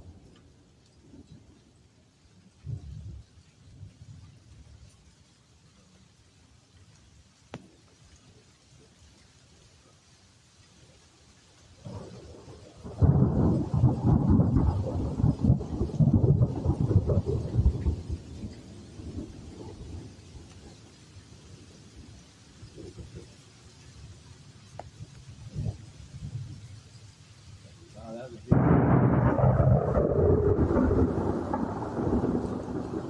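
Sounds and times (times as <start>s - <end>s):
faint steady rain: 0.0s - 33.0s
thunder rumbling: 11.8s - 20.8s, 25.0s - 26.8s, 27.9s - 33.0s.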